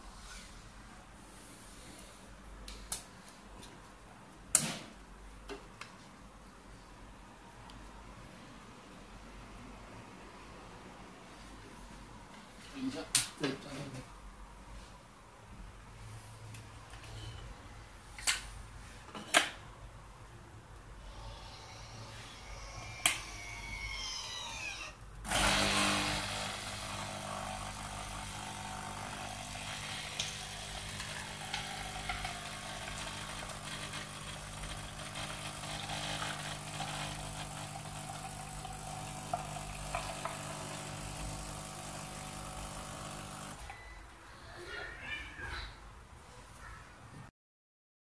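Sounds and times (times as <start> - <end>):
coffee pouring into cup: 25.3 - 43.6
coffee machine pump humming: 25.3 - 43.7.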